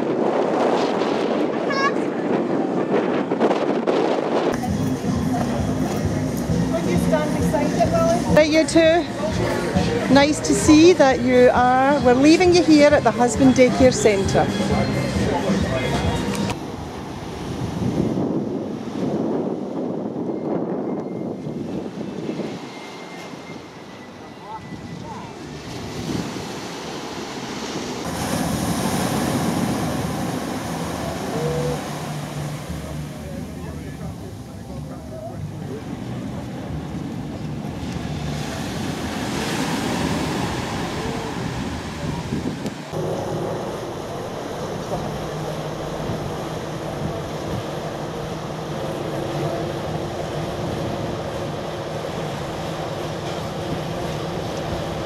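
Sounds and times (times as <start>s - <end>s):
wind on microphone: 0.0s - 14.4s, 16.4s - 22.9s, 24.4s - 32.5s, 36.0s - 44.8s
ship engines humming: 0.0s - 55.0s
water rushing: 21.4s - 55.0s
small waves breaking on beach: 25.2s - 33.3s, 37.8s - 44.6s.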